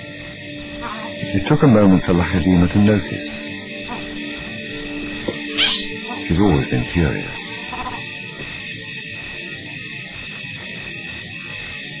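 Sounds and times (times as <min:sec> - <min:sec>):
soft soundtrack music chord: 0:00.5 - 0:08.1
baby baboon crying: 0:05.4 - 0:06.0, 0:07.7 - 0:08.0.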